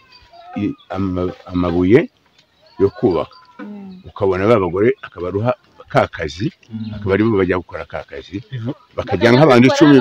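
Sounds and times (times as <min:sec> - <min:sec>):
man speaking: 0:00.6 - 0:02.1, 0:02.8 - 0:03.3, 0:04.1 - 0:10.0.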